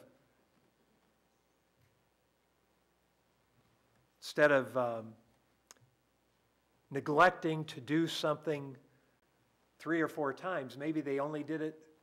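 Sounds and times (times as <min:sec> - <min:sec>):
man speaking: 0:04.2 - 0:05.2, 0:06.9 - 0:08.8, 0:09.8 - 0:11.9.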